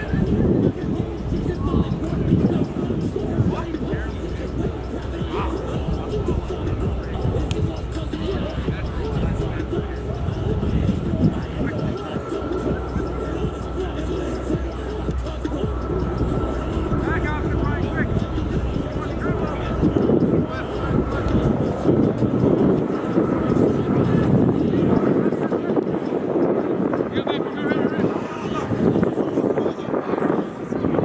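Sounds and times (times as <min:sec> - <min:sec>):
low steady rumble: 0:00.0 - 0:25.0
distant players calling out: 0:00.0 - 0:31.0
faint steady whine: 0:00.0 - 0:31.0.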